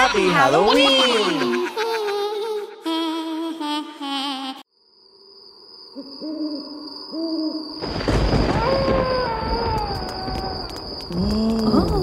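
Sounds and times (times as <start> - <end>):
owl hooting: 6.0 - 7.8
long slowly falling wail: 8.4 - 12.0.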